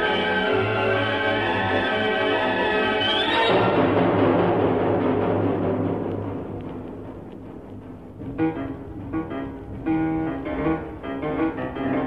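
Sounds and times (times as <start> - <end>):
orchestral chord: 0.0 - 12.0
percussive drum roll: 3.5 - 11.1.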